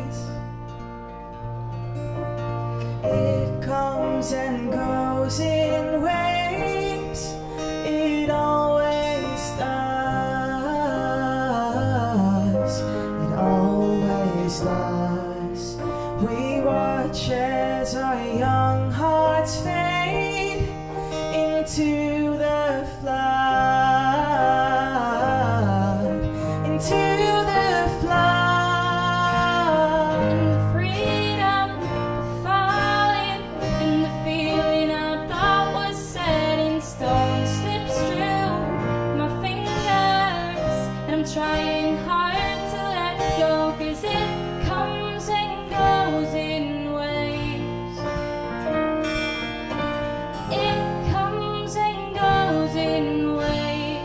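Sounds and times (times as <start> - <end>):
electric piano: 0.0 - 54.0
strummed acoustic guitar: 0.0 - 54.0
women singing: 26.8 - 47.9, 50.4 - 54.0.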